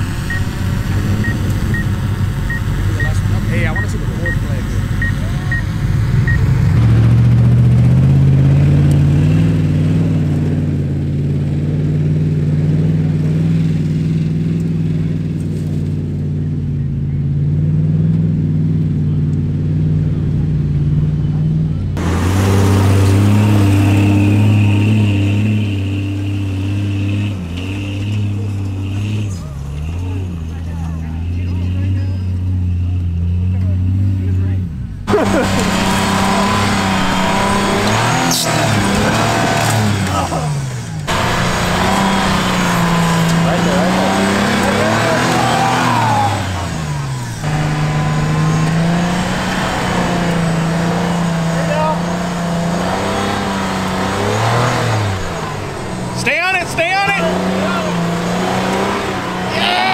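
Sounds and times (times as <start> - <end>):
pickup truck engines labouring: 0.0 - 59.9.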